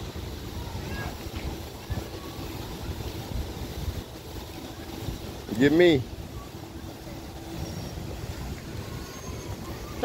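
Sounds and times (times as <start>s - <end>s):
city background rumble: 0.0s - 10.0s.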